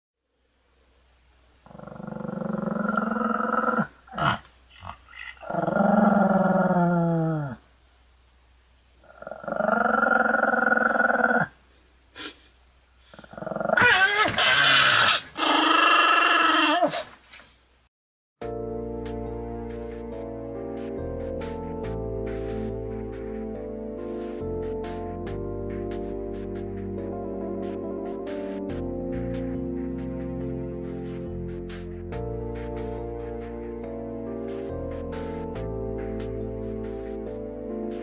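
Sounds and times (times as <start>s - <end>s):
dog growling: 1.6s - 7.6s, 9.0s - 11.5s, 13.1s - 17.0s.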